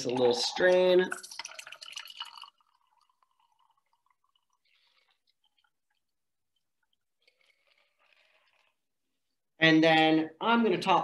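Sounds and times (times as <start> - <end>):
liquid trickling into glass: 0.0 - 8.7
faint drips: 0.0 - 8.8.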